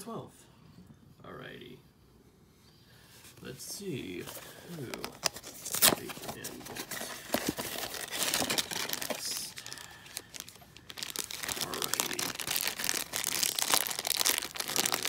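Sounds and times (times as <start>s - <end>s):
foil package crinkling and tearing: 4.7s - 15.0s.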